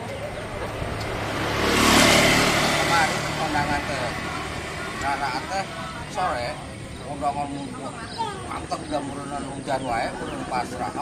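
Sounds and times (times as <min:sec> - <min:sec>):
vehicle passing on wet road: 0:00.7 - 0:06.2.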